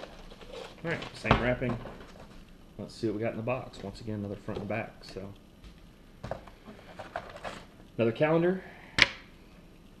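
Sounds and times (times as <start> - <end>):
paper rustling: 6.2 - 7.7.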